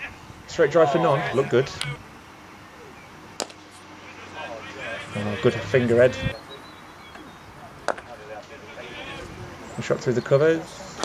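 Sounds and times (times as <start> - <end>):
faint voices of players: 0.0 - 11.0.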